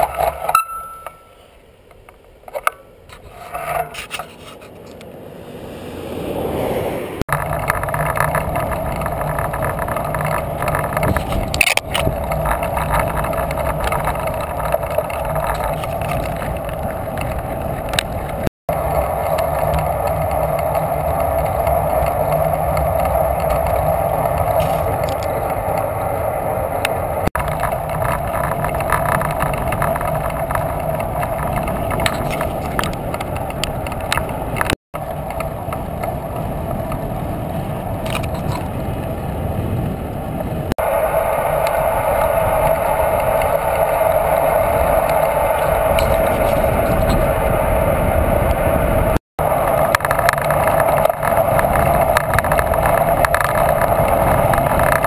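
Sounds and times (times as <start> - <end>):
tyre noise on asphalt: 0.0 - 55.0
wind rushing over microphone: 5.2 - 55.0.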